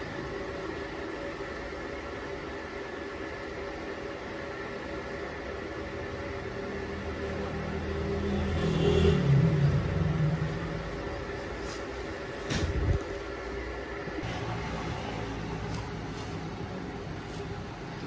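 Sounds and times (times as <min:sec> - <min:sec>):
factory machinery drone: 0:00.0 - 0:18.0.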